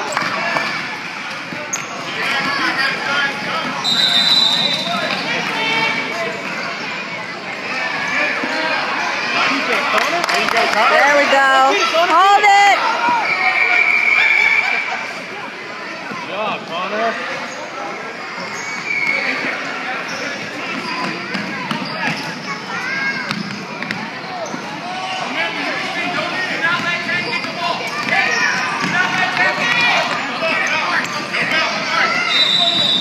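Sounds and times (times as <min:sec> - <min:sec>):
people calling out: 0:10.8 - 0:15.1.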